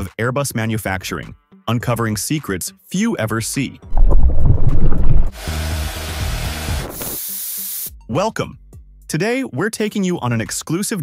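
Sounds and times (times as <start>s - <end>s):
deep low rumble: 3.9s - 5.4s
loud even hiss: 5.2s - 7.9s.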